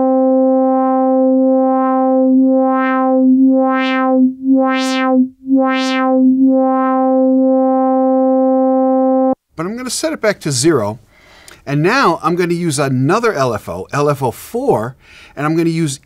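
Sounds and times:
synthesizer note with wah wobble: 0.0 - 9.4.

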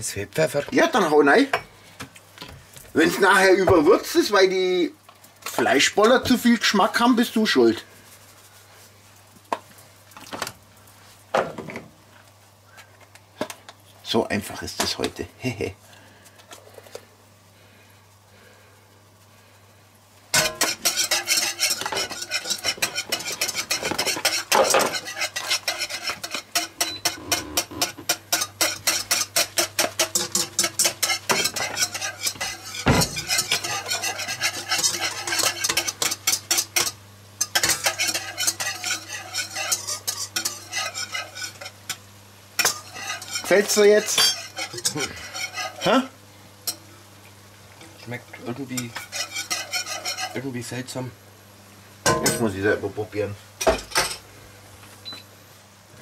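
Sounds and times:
wire whisk scraping a metal wok: 20.3 - 42.0, 42.6 - 46.0, 48.4 - 50.5.

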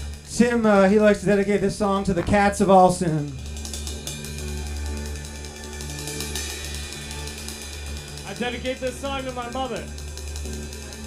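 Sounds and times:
cymbal and hi-hat taps: 0.0 - 11.0
rock band playing softly: 0.0 - 11.0
person speaking: 0.4 - 3.4, 8.3 - 9.9.

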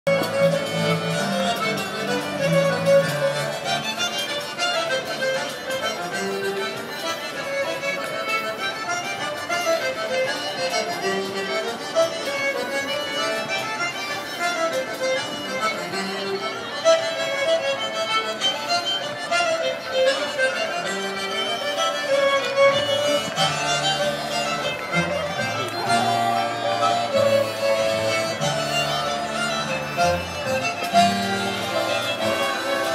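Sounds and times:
folk band playing dance tune: 0.1 - 32.9.

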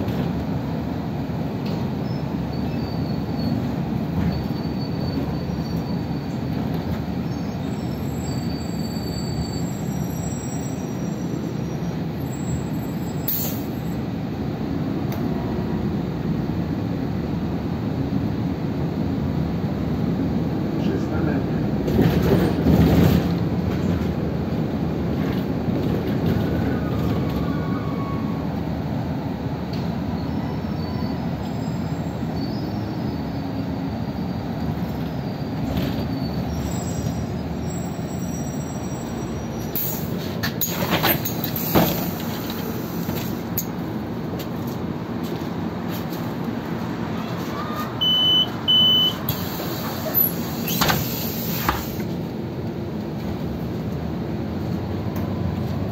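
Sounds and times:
bus engine and road rumble: 0.0 - 55.9
faint high squeals: 2.0 - 6.4, 7.3 - 14.0, 26.5 - 28.5, 30.1 - 34.4, 35.2 - 40.1, 47.2 - 52.0.

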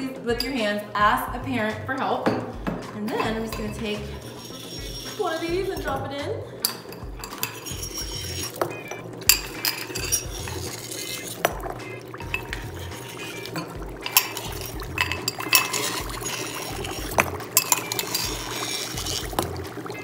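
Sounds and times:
dry ice bubbling in water: 3.2 - 20.0
metal spoon clinking on glass: 6.6 - 11.4, 12.3 - 19.5.

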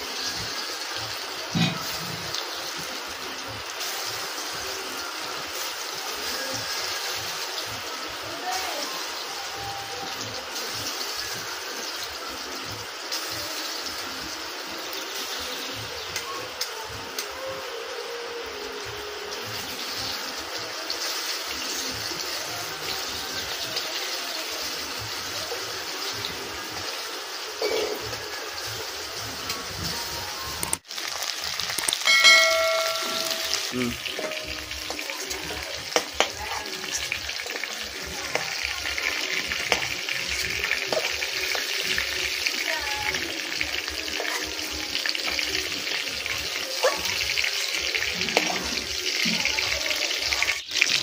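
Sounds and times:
chicken sizzling in oil: 0.0 - 51.0
ringing chime: 32.0 - 33.8.

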